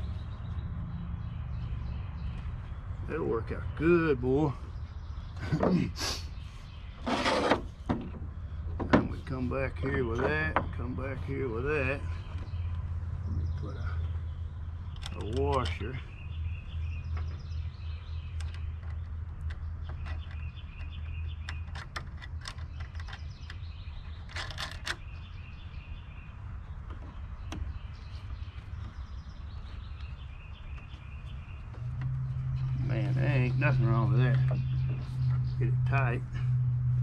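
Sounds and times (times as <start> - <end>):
small birds chirping: 0.0 - 37.0
steady low hum: 26.0 - 37.0.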